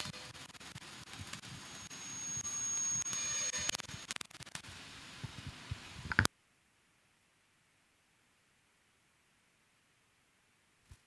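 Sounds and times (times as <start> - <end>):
hissing static noise: 0.0 - 11.0
thin high whistle: 1.6 - 3.8
scattered clicks: 2.8 - 4.7.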